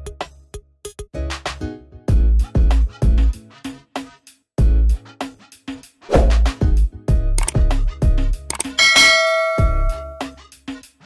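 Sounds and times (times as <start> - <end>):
background music with a beat: 0.0 - 11.0
bright notification bell ding: 8.8 - 10.4.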